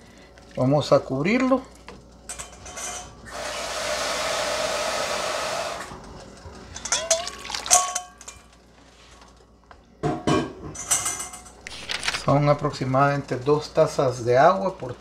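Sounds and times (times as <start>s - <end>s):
water pouring into a pot: 7.1s - 7.9s.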